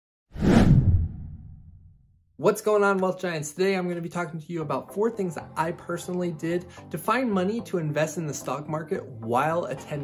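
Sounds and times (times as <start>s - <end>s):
whoosh: 0.3s - 2.1s
low rumble: 0.4s - 2.1s.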